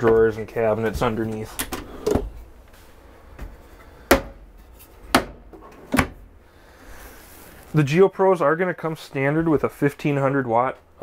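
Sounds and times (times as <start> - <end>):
cabinet doors and drawer knocking shut: 5.1 - 6.2.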